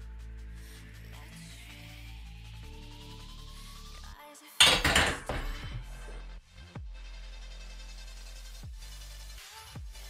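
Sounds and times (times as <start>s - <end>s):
barbell clanking on metal rack: 4.6s - 5.7s
weight plates rattling: 4.6s - 6.1s.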